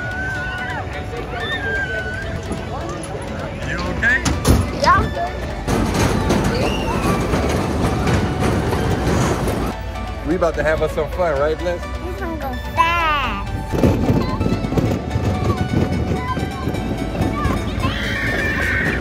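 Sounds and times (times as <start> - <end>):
voices and children's calls: 0.0 - 9.7, 10.8 - 19.0
crowd and ride noise: 0.0 - 19.0
fairground music: 0.0 - 19.0.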